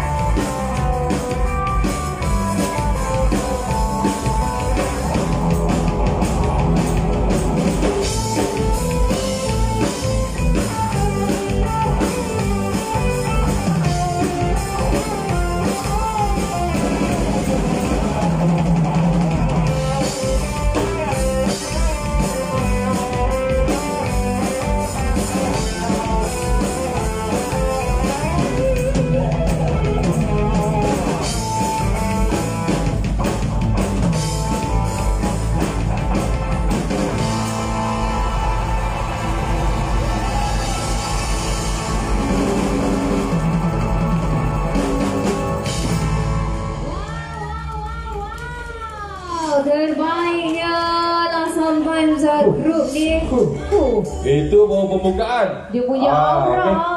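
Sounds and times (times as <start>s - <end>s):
live rock band playing: 0.0s - 54.4s.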